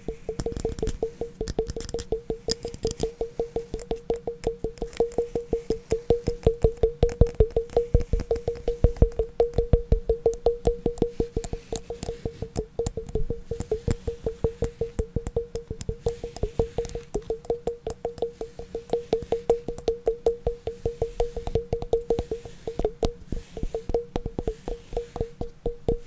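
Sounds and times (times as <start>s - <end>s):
fast tapping on resonant object: 0.0s - 26.0s.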